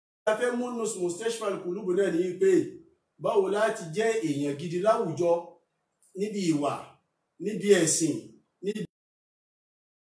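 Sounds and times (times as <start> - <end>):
man speaking: 0.3 - 5.4, 6.1 - 8.9.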